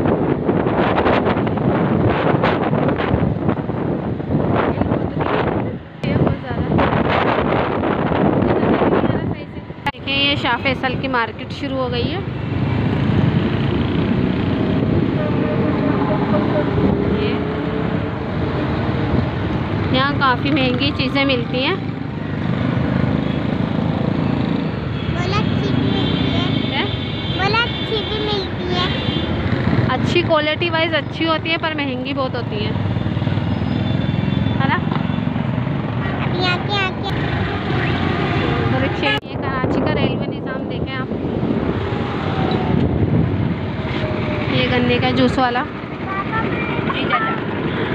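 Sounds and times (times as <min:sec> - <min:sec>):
vehicle engine and road noise: 0:00.0 - 0:47.9.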